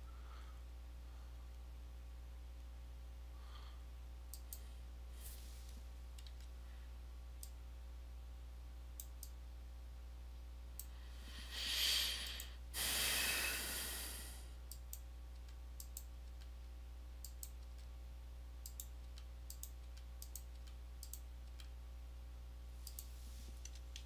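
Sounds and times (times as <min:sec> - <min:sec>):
computer mouse clicking: 0:04.3 - 0:04.6, 0:06.2 - 0:06.5, 0:09.0 - 0:09.4, 0:14.7 - 0:16.5, 0:17.2 - 0:17.9, 0:18.6 - 0:21.8, 0:22.8 - 0:24.0
person sighing: 0:11.3 - 0:14.4.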